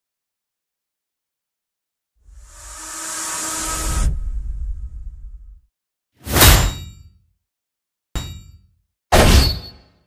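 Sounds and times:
low rumble: 0:03.9 - 0:05.7
metallic clang with ringing tail: 0:06.5 - 0:07.2, 0:08.2 - 0:09.8.

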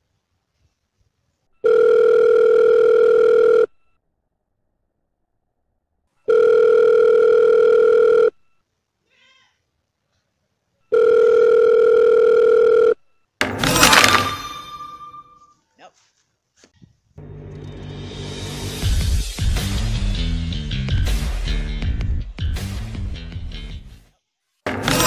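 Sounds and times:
telephone ringback beeps: 0:01.6 - 0:03.8, 0:06.2 - 0:08.4, 0:10.9 - 0:13.0
music: 0:17.2 - 0:25.0.

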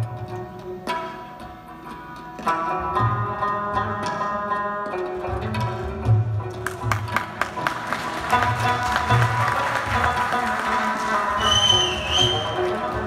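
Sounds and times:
hand drums: 0:00.0 - 0:13.0
plucked lute: 0:00.0 - 0:13.0.

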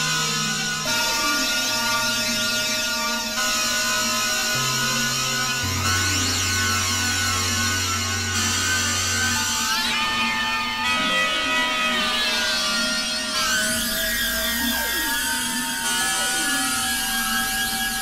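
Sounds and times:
sustained synthesizer drone: 0:00.0 - 0:18.0.

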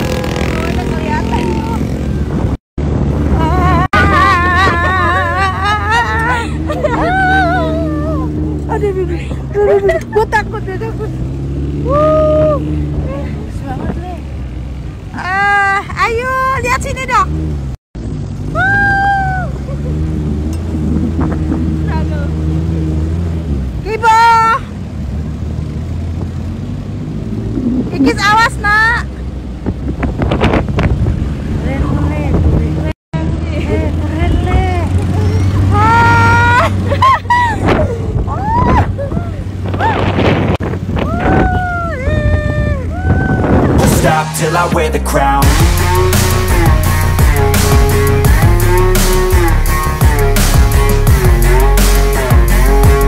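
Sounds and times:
car engine running: 0:00.0 - 0:18.7, 0:19.3 - 0:31.5, 0:43.6 - 0:53.0
people calling out: 0:03.4 - 0:10.6, 0:33.9 - 0:36.8, 0:41.1 - 0:53.0.

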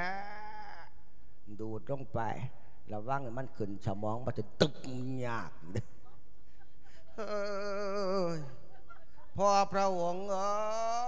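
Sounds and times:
man speaking: 0:01.5 - 0:05.8.

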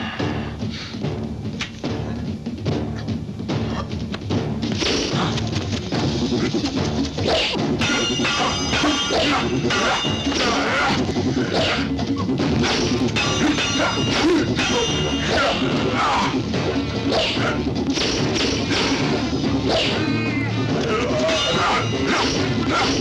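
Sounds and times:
dramatic film score: 0:00.0 - 0:23.0
metallic sword clashes: 0:12.7 - 0:15.6.

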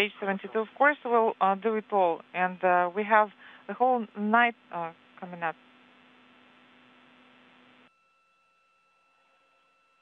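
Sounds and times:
radio channel hiss: 0:00.0 - 0:07.9
low steady hum: 0:00.0 - 0:10.0.

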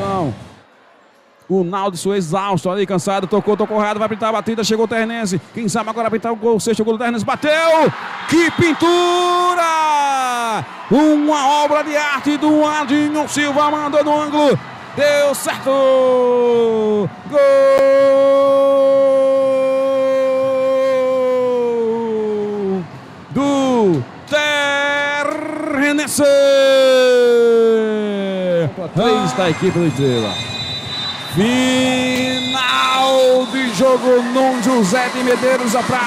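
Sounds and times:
man's long drawn-out shout: 0:16.2 - 0:22.8.

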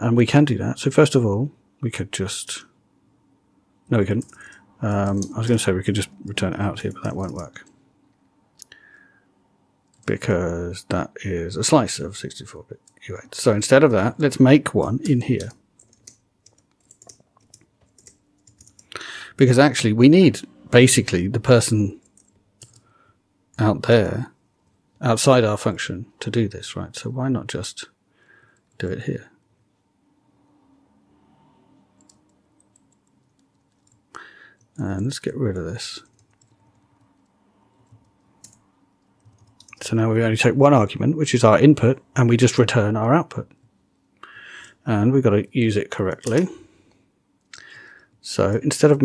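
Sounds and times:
faint low hum: 0:00.0 - 0:49.0
keyboard typing: 0:04.1 - 0:05.4, 0:06.8 - 0:07.8, 0:14.8 - 0:19.0, 0:22.0 - 0:22.8, 0:32.0 - 0:34.8, 0:36.0 - 0:39.8.

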